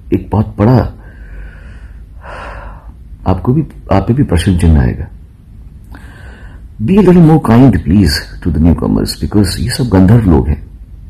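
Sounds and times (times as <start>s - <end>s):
man breathing in: 1.0s - 3.0s, 5.9s - 6.8s.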